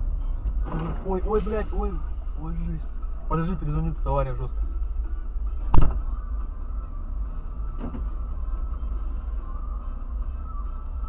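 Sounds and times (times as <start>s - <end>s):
car engine rumble inside cabin: 0.0s - 11.0s
loud sharp bang: 5.7s - 6.0s.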